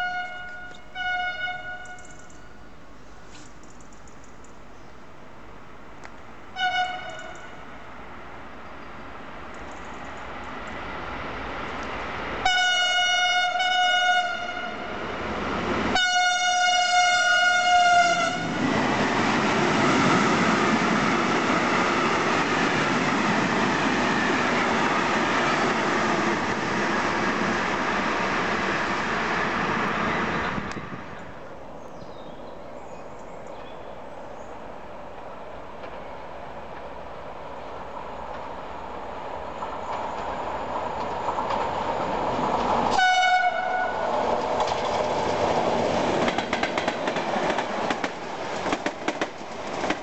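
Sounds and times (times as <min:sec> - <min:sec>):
train horn blasts: 0:00.0 - 0:02.2, 0:06.5 - 0:07.6, 0:12.4 - 0:15.0, 0:15.9 - 0:18.5, 0:42.9 - 0:44.1
train wheels rushing on rails: 0:16.6 - 0:31.5, 0:35.0 - 0:50.0.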